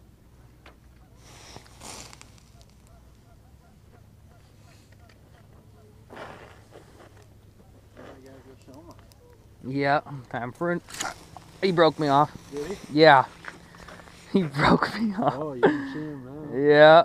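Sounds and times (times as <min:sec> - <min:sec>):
low steady hum: 0:00.0 - 0:16.8
jacket and gear rustling: 0:01.2 - 0:03.1, 0:10.8 - 0:14.5.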